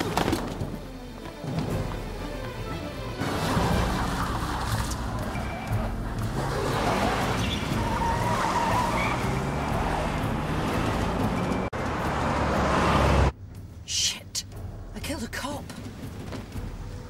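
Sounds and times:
tyres skidding: 0.0s - 13.7s
car engine revving: 3.2s - 13.4s.

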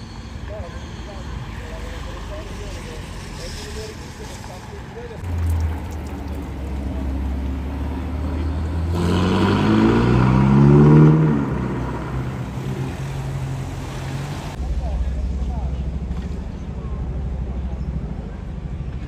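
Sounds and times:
car engine accelerating: 5.1s - 19.0s.

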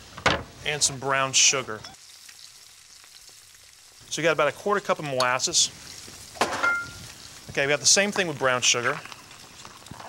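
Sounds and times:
sauce sizzling in saucepan: 0.0s - 10.0s.

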